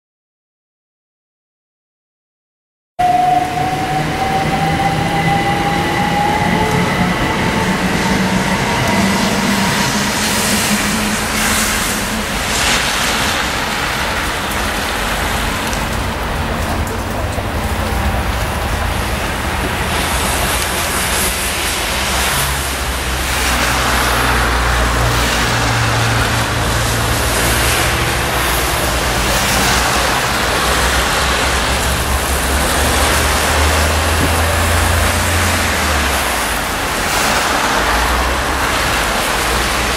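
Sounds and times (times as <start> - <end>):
cars passing on wet road: 3.0 - 39.9.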